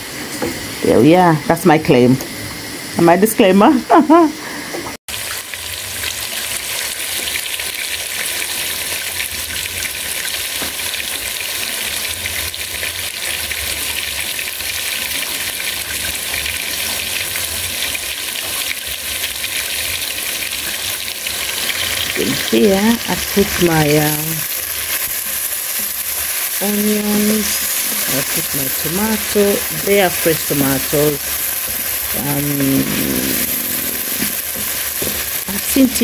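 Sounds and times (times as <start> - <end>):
potato chips sizzling in oil: 5.1 - 36.0.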